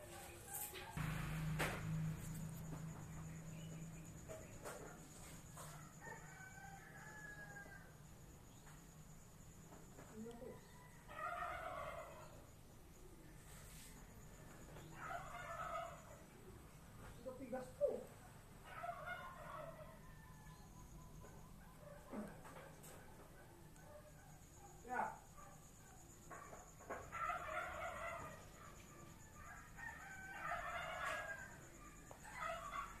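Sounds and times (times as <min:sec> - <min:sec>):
low background noise: 0:00.0 - 0:33.0
rooster crowing: 0:05.5 - 0:08.0, 0:10.4 - 0:12.5, 0:14.9 - 0:16.3, 0:18.7 - 0:21.4, 0:26.9 - 0:33.0.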